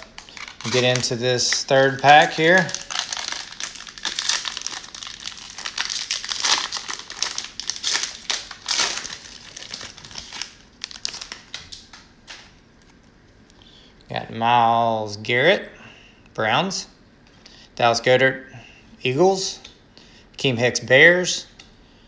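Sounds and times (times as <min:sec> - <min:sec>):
cellophane wrapper crinkling and tearing: 0:00.0 - 0:13.0.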